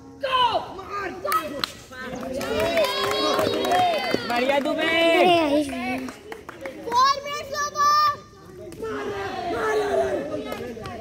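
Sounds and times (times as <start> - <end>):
young men shouting: 8.8 - 10.5.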